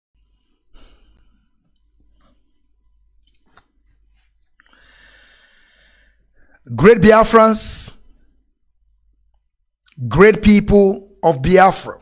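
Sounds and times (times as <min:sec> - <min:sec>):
low steady hum: 0:00.2 - 0:09.9.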